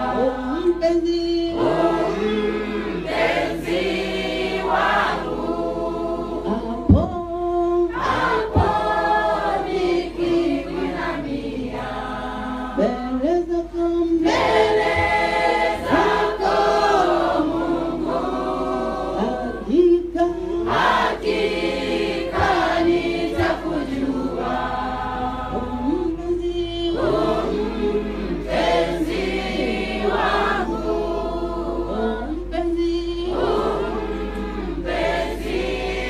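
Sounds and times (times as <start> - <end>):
congregation singing a hymn: 0.0 - 13.2, 14.2 - 36.0.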